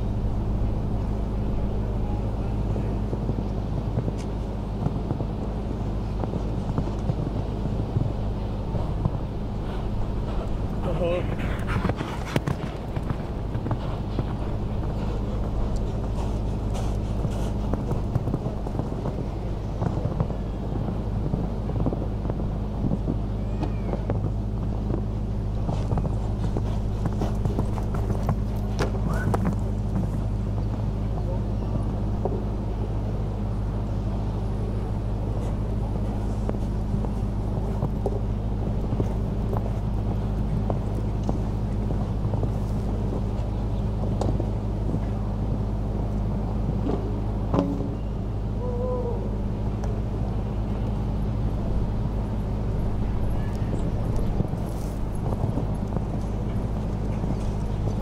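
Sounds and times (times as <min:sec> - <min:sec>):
hoofbeats on sand: 0:00.0 - 0:48.6, 0:49.8 - 0:58.0
distant voices: 0:00.0 - 0:58.0
steady low hum: 0:00.0 - 0:58.0.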